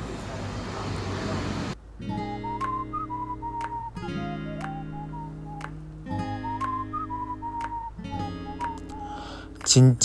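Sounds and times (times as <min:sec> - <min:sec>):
acoustic guitar chords: 0:01.8 - 0:10.0
whistled melody: 0:02.0 - 0:09.4.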